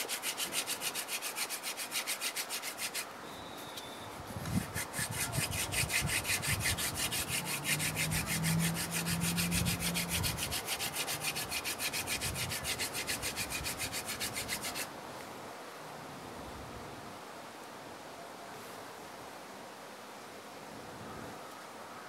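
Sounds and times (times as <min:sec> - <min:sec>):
wooden spindle rasping on board: 0:00.0 - 0:03.1, 0:04.5 - 0:14.9.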